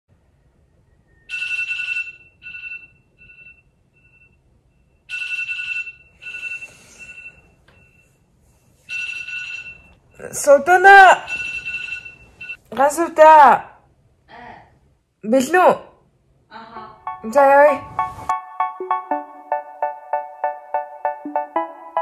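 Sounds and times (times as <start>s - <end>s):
phone electronic ringtone: 1.3s - 4.4s, 5.1s - 8.2s, 8.9s - 9.9s, 11.3s - 12.6s, 17.0s - 22.0s.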